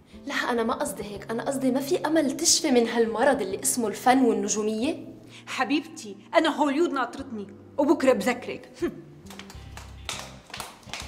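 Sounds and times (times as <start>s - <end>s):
quiet background music with bass: 0.0s - 11.0s.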